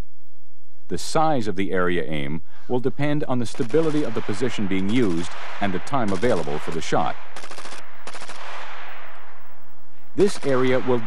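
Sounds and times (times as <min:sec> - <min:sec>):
rifle shots: 0:03.5 - 0:11.0.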